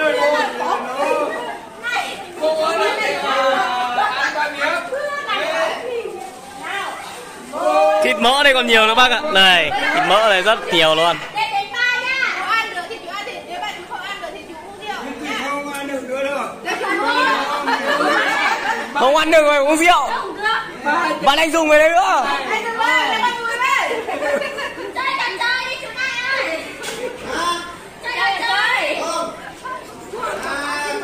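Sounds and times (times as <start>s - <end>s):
group chatter: 0.0s - 31.0s.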